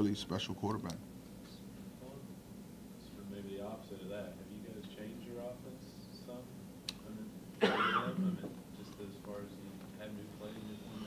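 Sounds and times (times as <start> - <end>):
person coughing: 7.6 - 8.5.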